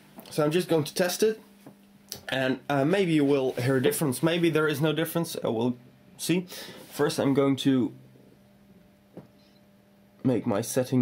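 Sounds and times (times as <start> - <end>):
faint electrical mains hum: 0.0 - 11.0.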